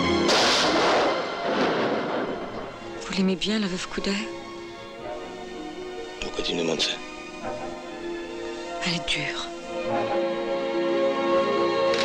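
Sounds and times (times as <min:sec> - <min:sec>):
music: 0:00.0 - 0:12.0
loud gunshot: 0:00.1 - 0:02.8.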